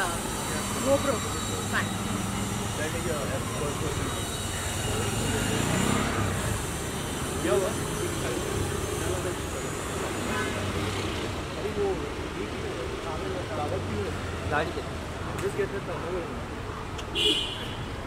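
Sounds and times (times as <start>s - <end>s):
crowd chatter: 0.0s - 17.8s
street traffic: 0.0s - 18.0s.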